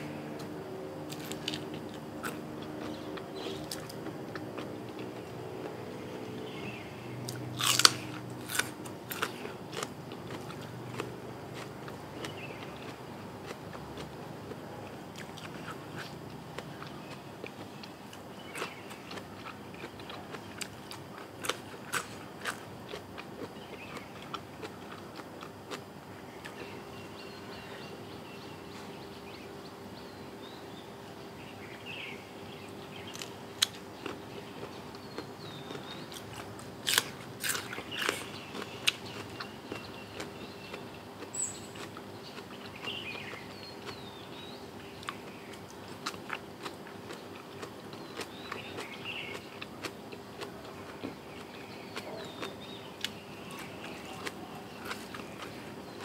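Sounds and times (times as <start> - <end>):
crunching bites into vegetable: 0.0 - 5.8, 7.2 - 14.6, 18.5 - 26.7, 33.1 - 44.1.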